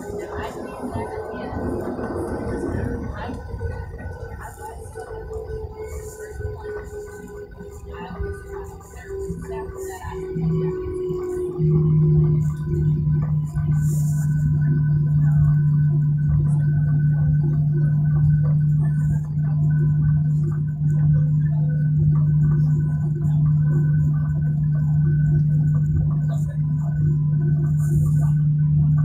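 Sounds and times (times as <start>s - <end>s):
high engine whine: 0.0s - 29.0s
jet engines hum inside cabin: 0.0s - 29.0s.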